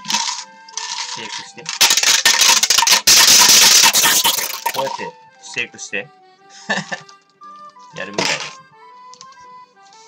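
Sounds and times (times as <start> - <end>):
ball rattling in shaker bottle: 0.0 - 5.1.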